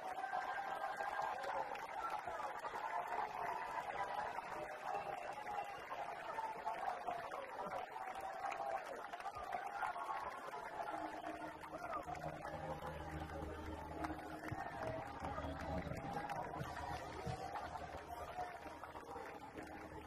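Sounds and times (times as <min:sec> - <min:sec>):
choir shouting and cheering: 0:00.0 - 0:20.0.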